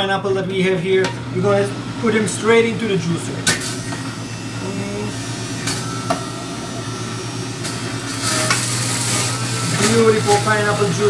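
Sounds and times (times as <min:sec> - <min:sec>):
electric juicer motor hum: 0:00.0 - 0:11.0
juicer shredding pineapple: 0:00.3 - 0:11.0.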